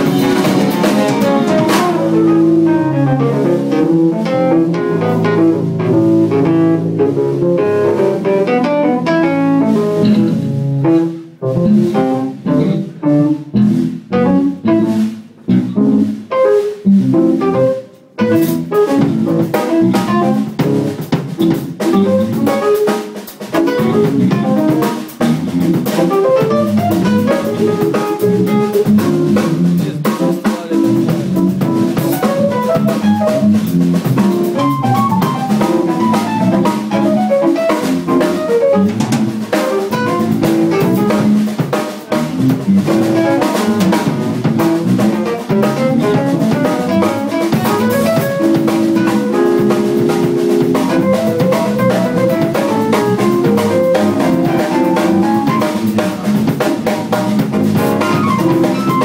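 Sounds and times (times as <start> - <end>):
busy drum kit: 0.0 - 59.0
jazz band playing: 0.0 - 59.0.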